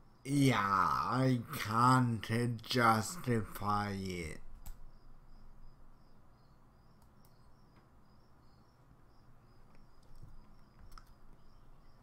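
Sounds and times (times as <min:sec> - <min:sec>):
faint high-pitched chirping: 0:00.0 - 0:12.0.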